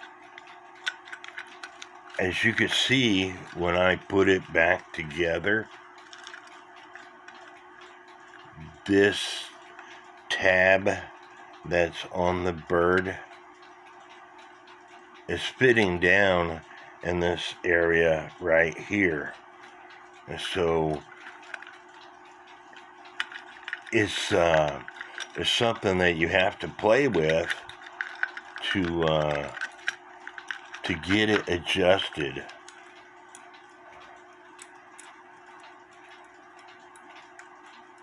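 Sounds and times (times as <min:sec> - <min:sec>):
clock ticking: 0:00.0 - 0:38.0
steady low hum: 0:00.0 - 0:38.0.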